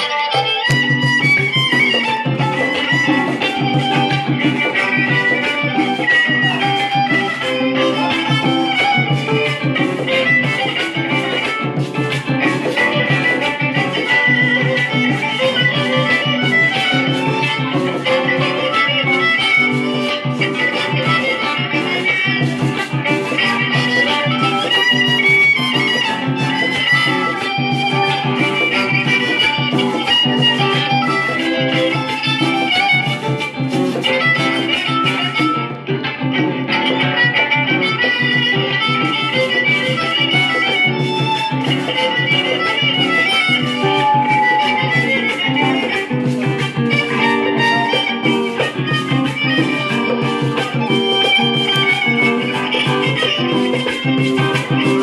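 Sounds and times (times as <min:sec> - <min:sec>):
violin playing a melody: 0:00.0 - 0:35.9, 0:36.7 - 0:54.8
acoustic guitar: 0:00.0 - 0:55.0
hand drums: 0:00.0 - 0:55.0.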